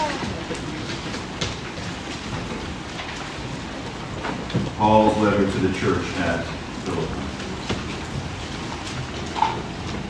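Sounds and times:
man speaking: 4.8 - 7.2.

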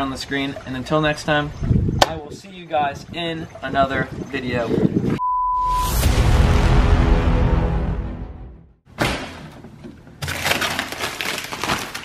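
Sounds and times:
freezer lid opening: 9.0 - 12.0
frozen plastic bag crinkling: 10.2 - 12.0.

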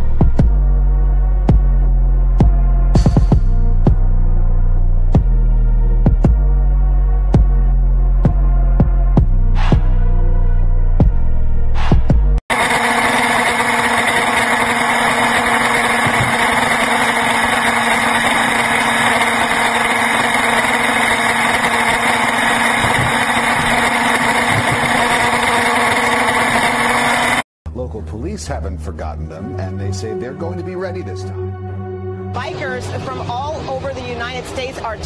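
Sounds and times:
vehicle at highway speed: 12.5 - 27.4.

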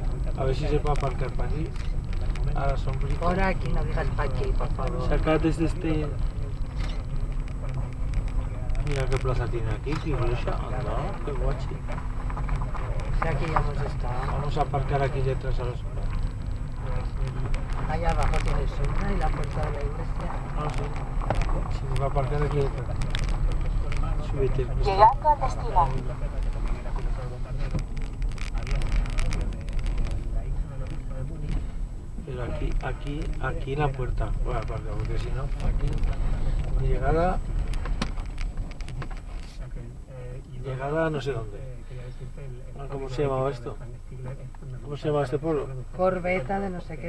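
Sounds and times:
car engine and tyres rumbling: 0.0 - 47.0
light clicks and crackles: 0.2 - 47.0.

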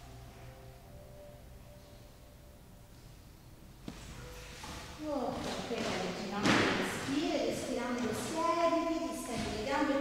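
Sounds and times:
woman speaking: 5.0 - 10.0.

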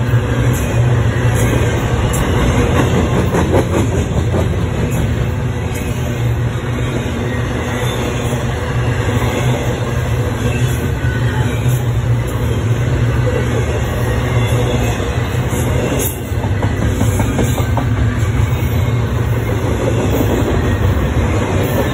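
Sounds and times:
freight train wheels rumbling on rails: 0.0 - 21.9.

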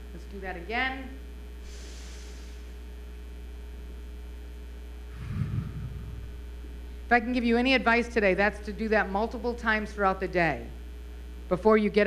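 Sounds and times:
steady electrical hum: 0.0 - 12.0
breath into microphone: 1.6 - 2.8, 5.1 - 7.1.

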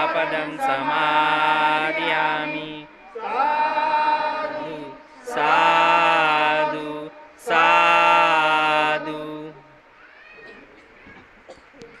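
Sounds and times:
voices chanting a long note: 0.0 - 9.9.

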